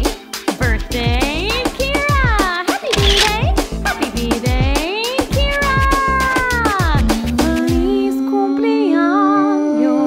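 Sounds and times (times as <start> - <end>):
background music with steady beat: 0.0 - 8.2.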